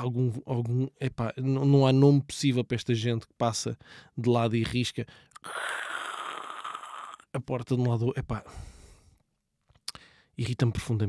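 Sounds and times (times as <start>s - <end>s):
man breathing: 3.8s - 4.2s, 5.1s - 6.4s, 8.4s - 9.3s, 9.9s - 10.4s.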